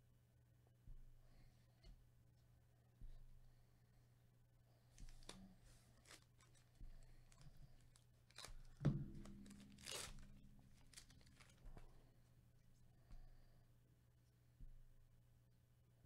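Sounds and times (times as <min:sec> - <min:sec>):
wrapper crinkling and ripping: 0:06.0 - 0:06.7, 0:07.3 - 0:11.7.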